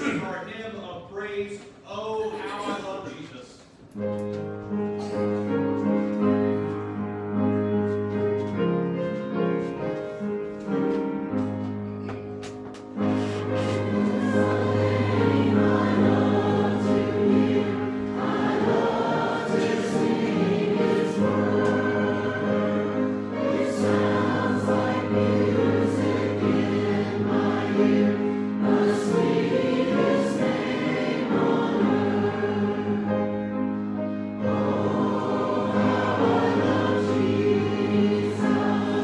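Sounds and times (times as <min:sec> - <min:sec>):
mixed choir singing: 0:13.0 - 0:39.0.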